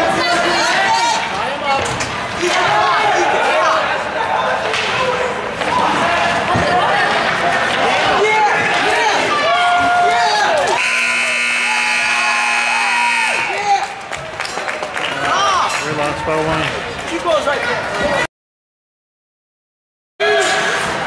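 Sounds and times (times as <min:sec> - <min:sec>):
spectators shouting and cheering: 0:00.0 - 0:18.3, 0:20.2 - 0:21.0
buzzing rink horn: 0:10.8 - 0:13.6.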